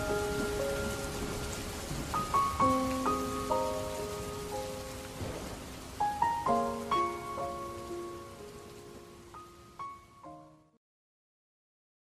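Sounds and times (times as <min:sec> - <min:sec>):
slow music of ringing notes: 0:00.0 - 0:10.8
steady rain-like hiss: 0:00.0 - 0:10.8.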